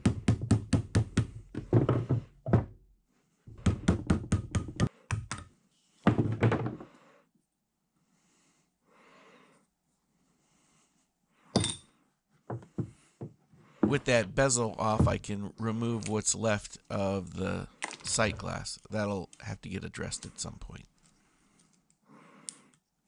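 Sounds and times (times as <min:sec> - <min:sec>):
knock: 0:00.0 - 0:02.8, 0:06.1 - 0:06.9.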